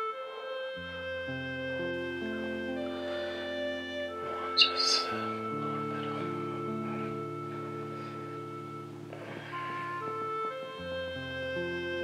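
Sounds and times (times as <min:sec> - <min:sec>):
soft sustained chords score: 0:00.0 - 0:12.0.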